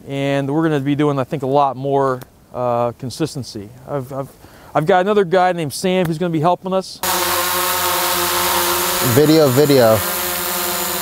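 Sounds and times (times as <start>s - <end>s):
drone propellers buzzing: 7.0s - 11.0s.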